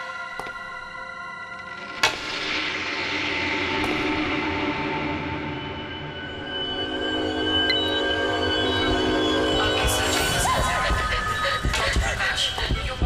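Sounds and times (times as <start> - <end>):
suspenseful score of held tones: 0.0 - 13.0.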